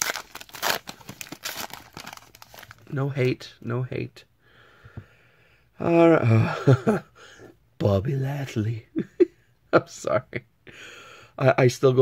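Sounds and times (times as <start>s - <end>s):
foil wrapper crinkling and tearing: 0.0s - 2.8s.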